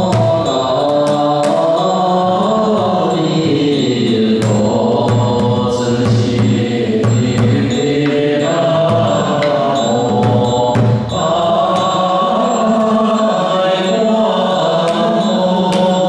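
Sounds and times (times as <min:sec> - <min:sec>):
group chanting together: 0:00.0 - 0:16.0
large drum struck with sticks: 0:04.4 - 0:08.2, 0:08.8 - 0:12.0.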